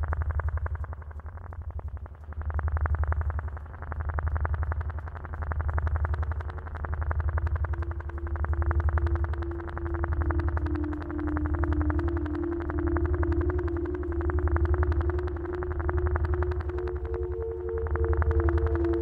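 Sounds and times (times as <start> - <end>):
low synth drone with pulses: 0.0 - 19.0
held synth tone: 7.7 - 19.0.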